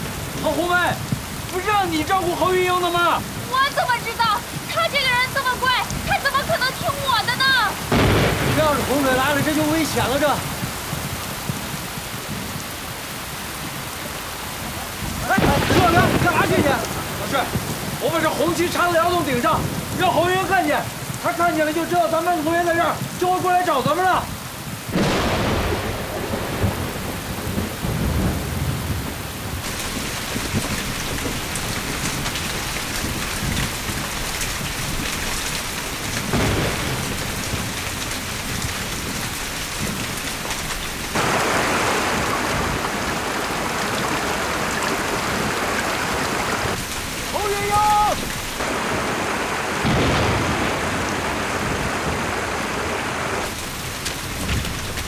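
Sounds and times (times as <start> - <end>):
heavy rain pouring: 0.0 - 55.0
low thunder rumbling: 0.0 - 55.0.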